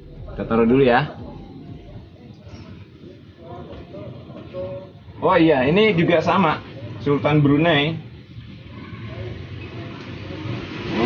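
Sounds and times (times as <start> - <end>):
low steady rumble: 0.0 - 2.2.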